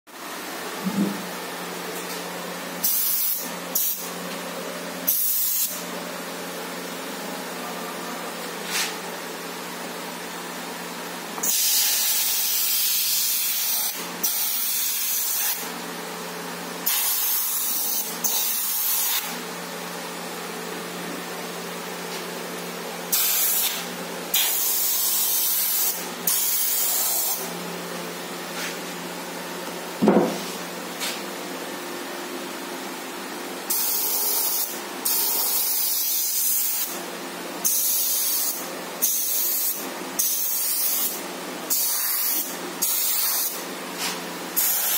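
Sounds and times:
airbrush spray hiss: 2.8 - 4.1, 5.1 - 5.8, 11.4 - 15.6, 23.1 - 27.5, 33.7 - 37.0, 37.6 - 44.9.

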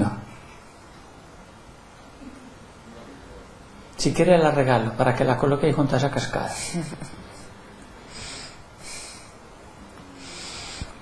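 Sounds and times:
soft breathy exhales: 8.1 - 9.4, 10.1 - 11.0.

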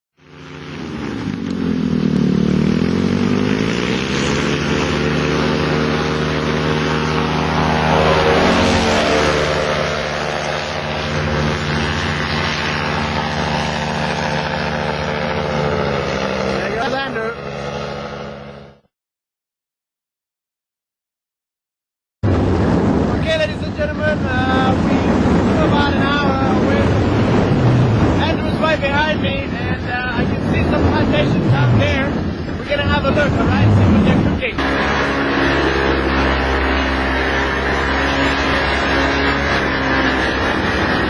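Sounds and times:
engine tone sweeping: 0.2 - 18.9, 25.6 - 28.9, 30.3 - 41.0
paramotor engine droning: 0.2 - 18.9, 23.4 - 41.0.

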